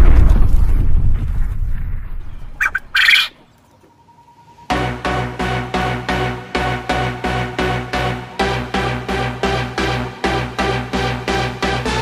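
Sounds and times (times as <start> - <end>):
low rumble: 0.0 - 2.9
bird squawking: 2.5 - 4.7.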